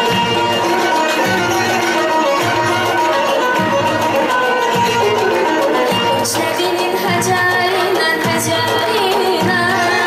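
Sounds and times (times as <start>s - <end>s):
long-necked lute: 0.0s - 8.0s
accordion: 0.0s - 10.0s
bowed fiddle: 0.0s - 10.0s
girl singing: 6.2s - 10.0s.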